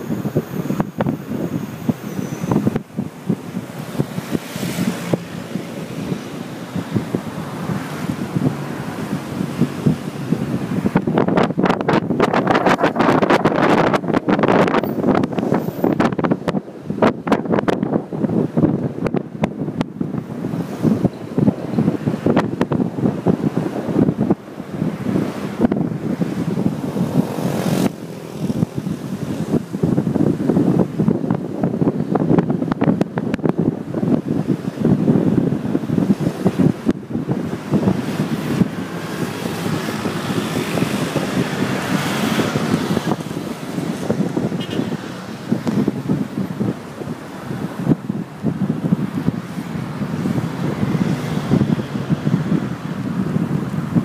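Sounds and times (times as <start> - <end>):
road and engine noise: 0.0 - 54.0
wind buffeting microphone: 0.0 - 54.0.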